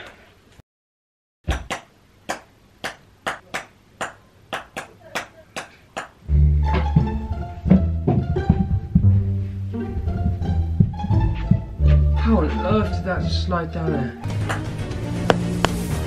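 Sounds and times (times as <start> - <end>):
pizzicato string notes: 6.2 - 16.0
music backing with strong bass: 6.3 - 13.0.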